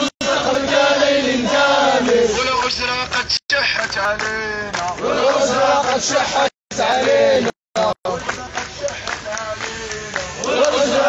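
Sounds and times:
crowd chanting in unison: 0.0s - 2.6s, 4.9s - 11.0s.

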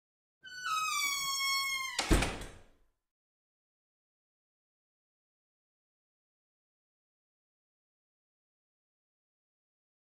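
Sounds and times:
door hinge creaking: 0.4s - 2.7s
door shutting with a thud: 1.9s - 2.7s.

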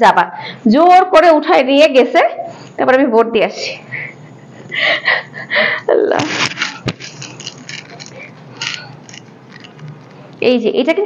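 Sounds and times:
cloth rustling: 6.2s - 10.3s.

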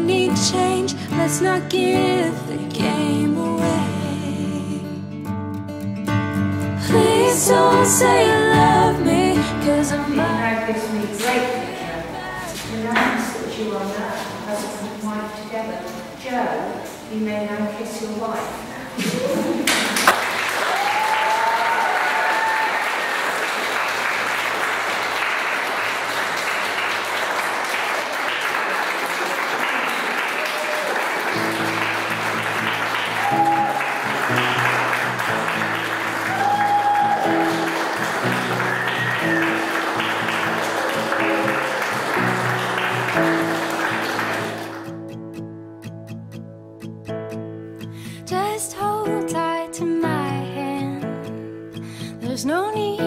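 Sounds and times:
guitar music: 0.0s - 13.0s, 31.3s - 53.0s
guests applauding: 19.3s - 45.0s.

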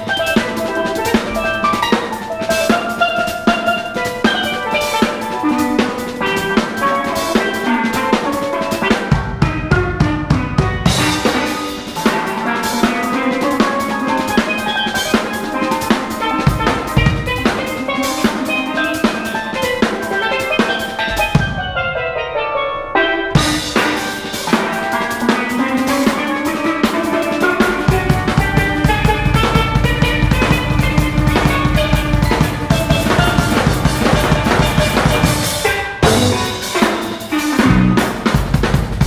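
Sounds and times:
drum kit: 0.0s - 39.0s
steel pan melody: 0.0s - 39.0s
electric bass: 27.9s - 36.7s, 37.6s - 39.0s.

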